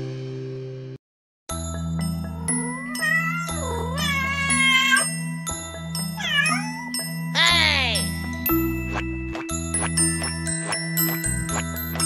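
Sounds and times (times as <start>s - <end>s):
cat meowing: 2.5s - 5.1s, 6.2s - 8.0s.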